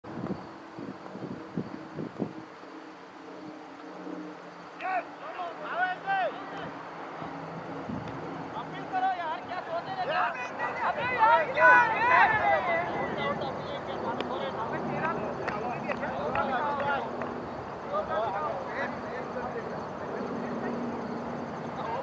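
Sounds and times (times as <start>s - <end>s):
players shouting and cheering: 4.8s - 6.8s, 8.6s - 17.1s.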